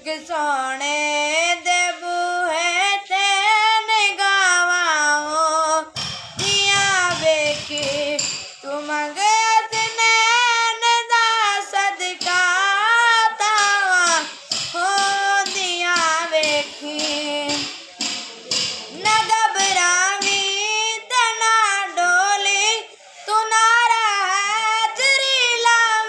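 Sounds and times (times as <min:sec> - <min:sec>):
boy singing unaccompanied: 0:00.0 - 0:26.0.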